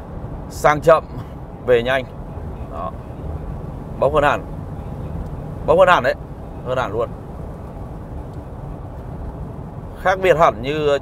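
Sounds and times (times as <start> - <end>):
diesel engine drone in car cabin: 0.0 - 11.0
road noise: 0.0 - 11.0.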